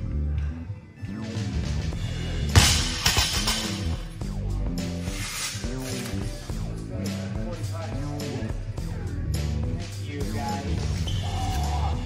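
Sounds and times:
music with steady bass line: 0.0s - 12.0s.

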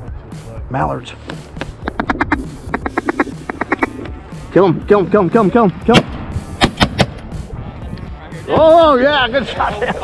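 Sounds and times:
shotgun shots: 5.9s - 7.2s.

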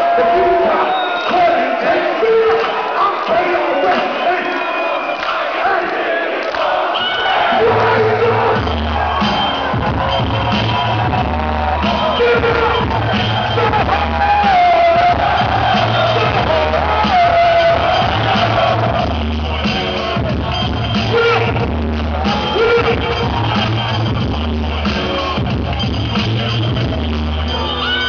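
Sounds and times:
hip-hop music through speakers: 0.0s - 5.9s, 7.2s - 28.0s
voices over music: 0.0s - 10.2s, 10.8s - 25.5s
crowd cheering: 0.0s - 28.0s
heavy bass beat: 7.5s - 27.8s.

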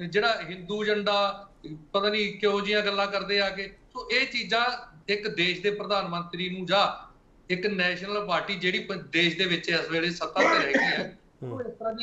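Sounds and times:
person speaking: 0.0s - 12.0s
throat clearing: 10.4s - 11.6s.

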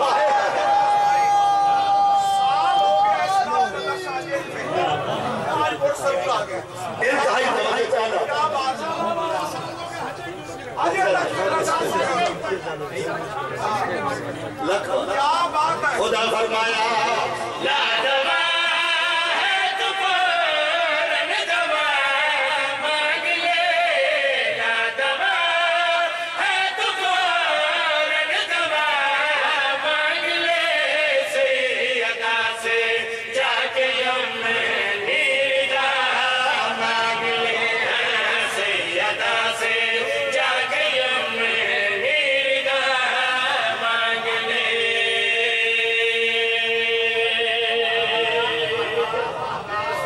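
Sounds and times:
men chanting in unison: 0.0s - 50.0s
men talking over one another: 2.2s - 17.7s
man speaking through microphone: 3.2s - 17.6s.

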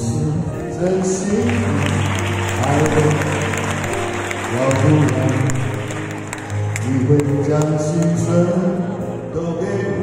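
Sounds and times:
audience clapping: 0.9s - 8.2s.

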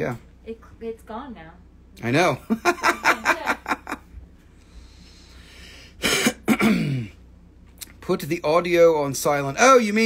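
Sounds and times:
person laughing: 2.5s - 4.1s
person clearing throat: 6.0s - 7.2s.

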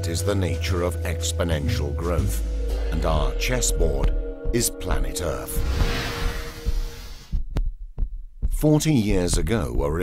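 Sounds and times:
low thuds: 2.4s - 8.7s.

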